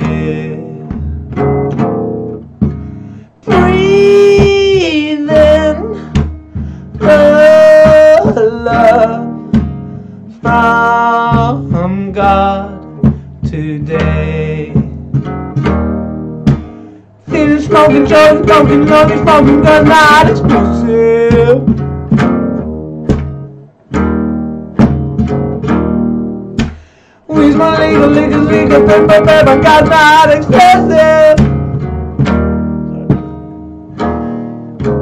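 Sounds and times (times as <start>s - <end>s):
man singing: 0.0s - 1.2s, 3.4s - 15.3s, 17.2s - 21.8s, 27.2s - 31.8s
acoustic guitar strumming: 0.0s - 35.0s.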